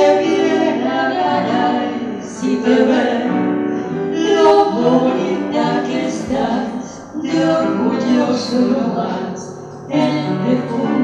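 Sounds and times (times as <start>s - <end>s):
two women singing a tango duet: 0.0s - 11.0s.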